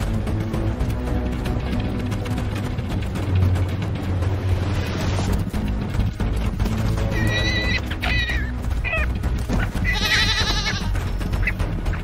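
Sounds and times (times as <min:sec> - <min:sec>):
background music: 0:00.0 - 0:12.0
guanaco bleating: 0:07.1 - 0:11.0.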